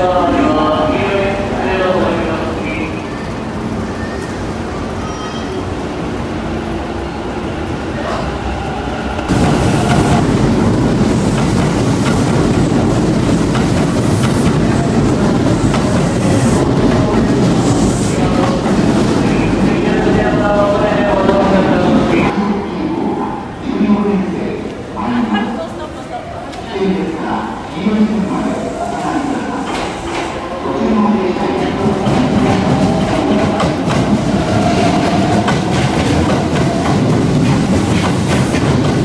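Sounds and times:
train wheels rumbling on rail: 0:00.0 - 0:22.4, 0:26.0 - 0:39.0.

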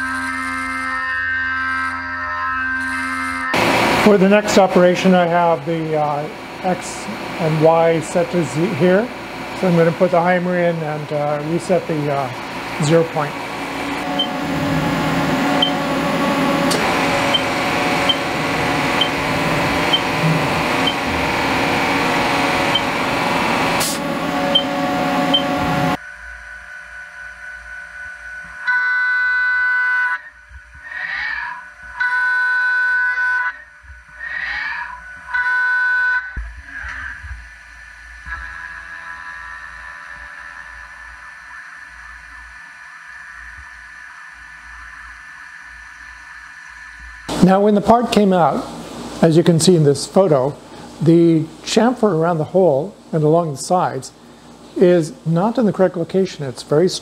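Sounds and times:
high-pitched cutting tone: 0:00.0 - 0:26.0
milling machine noise: 0:02.8 - 0:28.6, 0:36.3 - 0:57.0
faint steady whine: 0:03.6 - 0:29.6, 0:36.2 - 0:57.0.

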